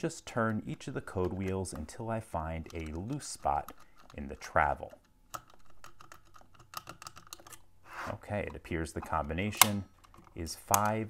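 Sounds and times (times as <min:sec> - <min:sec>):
lockbox code wheels clicking: 0:00.4 - 0:07.6.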